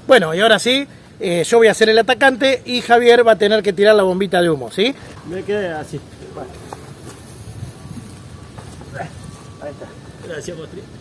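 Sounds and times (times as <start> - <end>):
scuffing on gritty dirt path: 6.3 - 9.7.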